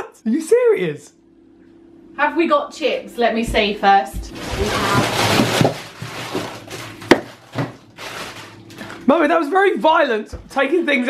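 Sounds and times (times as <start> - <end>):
knocks in freezer drawer: 4.2 - 7.8
frozen food packets rustling: 4.3 - 9.2.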